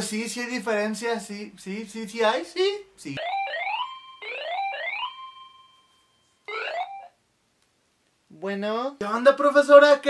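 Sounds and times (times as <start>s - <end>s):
phone ringtone rising sweeps: 3.2s - 7.2s.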